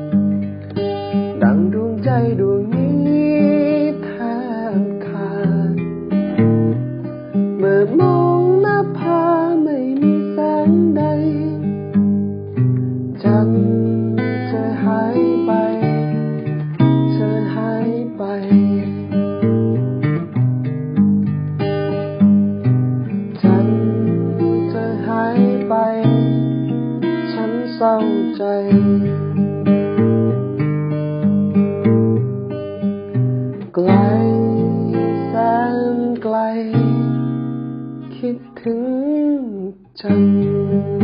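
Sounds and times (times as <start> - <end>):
strummed acoustic guitar: 0.0 - 41.0
man singing: 1.3 - 5.9, 7.6 - 11.7, 13.2 - 16.0, 17.0 - 19.1, 23.3 - 26.5, 27.2 - 29.2, 33.7 - 37.2, 38.1 - 41.0.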